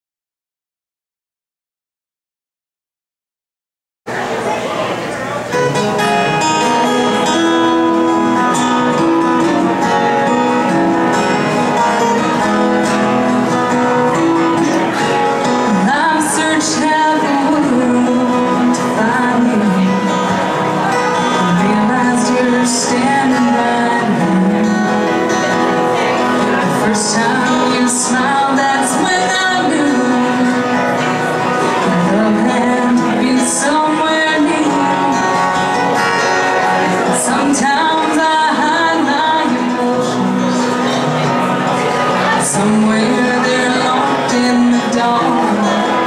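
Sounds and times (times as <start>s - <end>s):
acoustic guitars playing country music: 4.1s - 46.0s.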